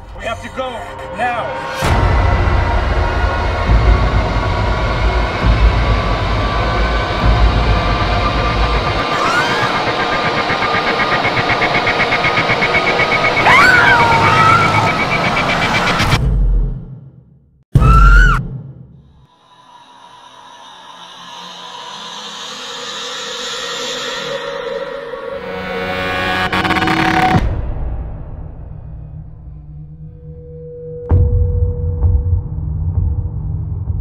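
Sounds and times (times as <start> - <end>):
heavy pulsing low rumble: 1.8 - 13.4
sustained tones: 3.0 - 16.0.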